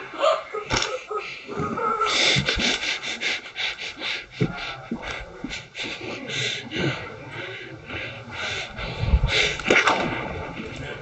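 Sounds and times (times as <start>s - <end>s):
breathy panting: 0.0s - 11.0s.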